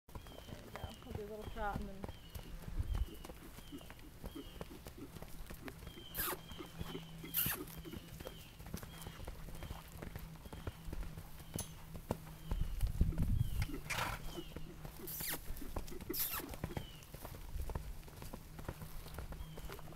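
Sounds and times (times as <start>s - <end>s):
horse hoofbeats on sand: 0.1s - 19.9s.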